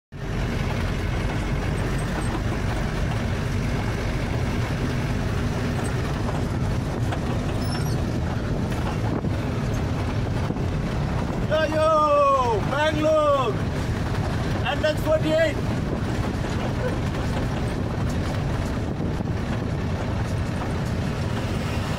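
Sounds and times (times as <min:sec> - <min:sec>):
diesel engine and road noise: 0:00.1 - 0:21.9
man speaking: 0:14.6 - 0:15.6.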